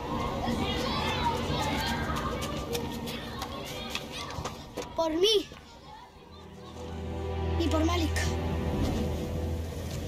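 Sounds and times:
children shouting: 0.0s - 7.2s.

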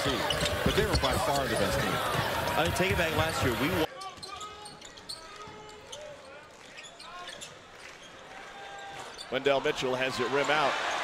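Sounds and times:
faint crowd noise and voices: 0.0s - 10.6s.

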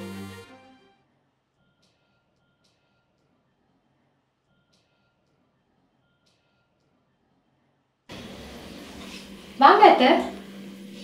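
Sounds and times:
room tone hiss: 8.1s - 11.0s.

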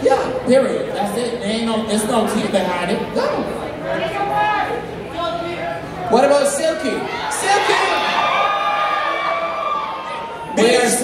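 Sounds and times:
audience shouting and cheering: 3.9s - 11.0s.

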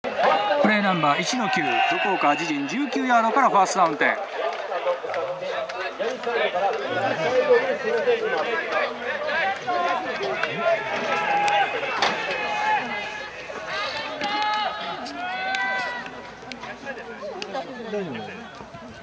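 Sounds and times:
players chattering and shouting: 0.0s - 19.0s
long drawn-out shouted calls: 0.1s - 3.6s, 8.2s - 16.2s.

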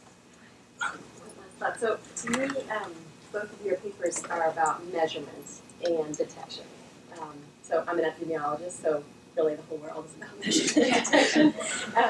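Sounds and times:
person speaking: 0.8s - 12.0s.

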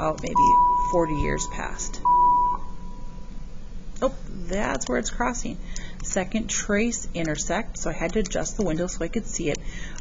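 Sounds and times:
high electronic beep: 0.3s - 3.3s.

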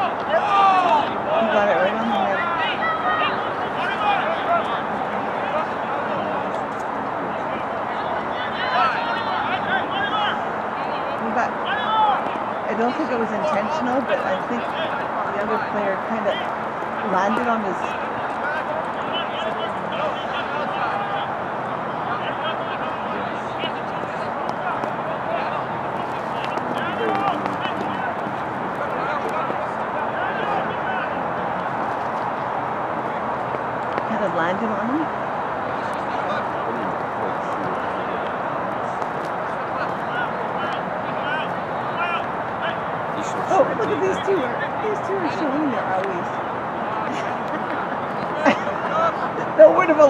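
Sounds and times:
murmur of overlapping voices: 0.0s - 50.0s.

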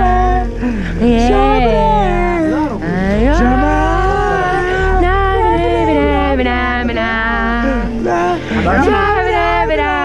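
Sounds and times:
low steady hum: 0.0s - 10.0s
person singing long note: 0.0s - 10.0s.

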